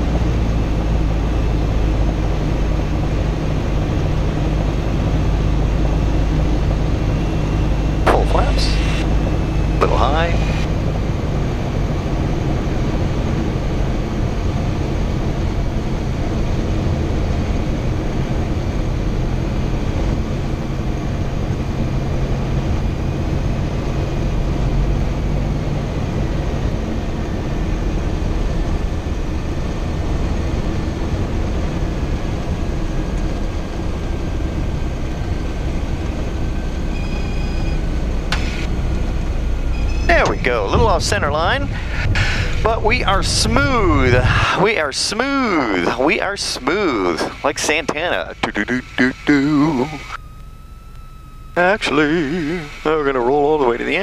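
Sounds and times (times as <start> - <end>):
propeller plane engine drone: 0.0 - 54.0.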